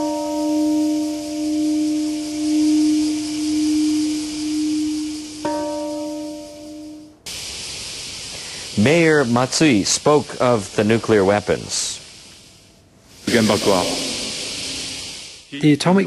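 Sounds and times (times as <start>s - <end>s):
large bell ringing: 0.0s - 7.2s
steady hiss: 0.0s - 16.0s.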